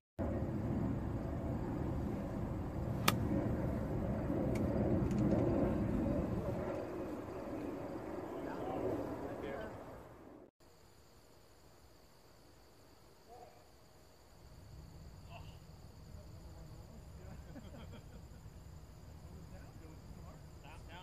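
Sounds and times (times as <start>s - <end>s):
wind on microphone: 0.7s - 10.0s
golf club striking ball: 3.0s - 3.3s
faint insect chirring: 10.6s - 21.0s.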